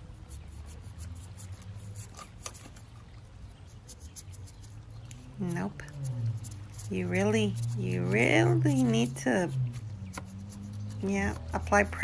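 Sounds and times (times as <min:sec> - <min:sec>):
brush bristles scrubbing cactus: 0:00.0 - 0:12.0
steady low rumble: 0:05.0 - 0:12.0.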